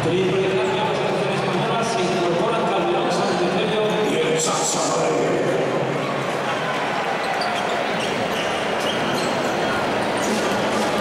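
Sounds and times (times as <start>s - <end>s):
indoor crowd noise: 0.0s - 11.0s
short high squeaks: 7.2s - 10.9s.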